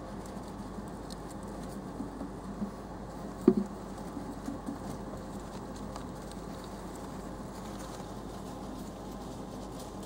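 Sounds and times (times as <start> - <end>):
hamsters lapping liquid: 0.0 - 10.0.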